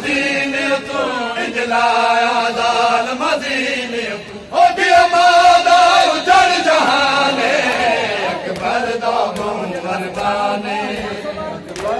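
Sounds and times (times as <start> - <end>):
crowd of men chanting: 0.0 - 11.9
sharp slaps: 8.5 - 10.4.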